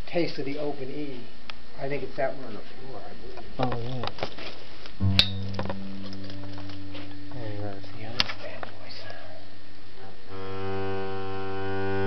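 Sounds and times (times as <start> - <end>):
sharp click: 5.0 - 7.4
upright bass low note: 5.0 - 8.9.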